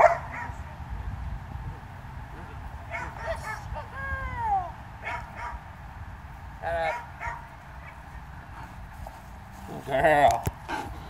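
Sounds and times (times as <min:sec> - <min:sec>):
dog barking: 0:00.0 - 0:00.6, 0:02.9 - 0:03.6, 0:05.0 - 0:05.6, 0:06.8 - 0:08.0.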